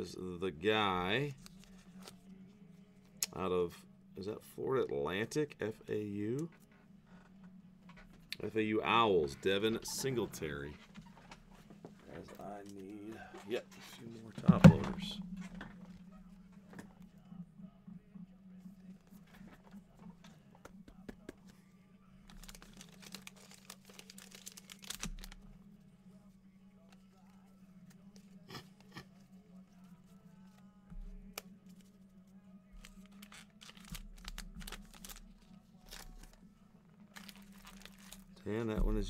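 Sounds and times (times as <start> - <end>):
low steady hum: 0.0 - 39.0
wrappers crinkling and tearing: 22.3 - 25.4, 32.8 - 36.5, 37.1 - 38.4.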